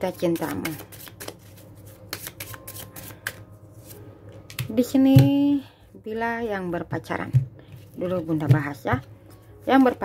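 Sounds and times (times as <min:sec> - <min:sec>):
playing cards being shuffled: 0:00.3 - 0:04.7.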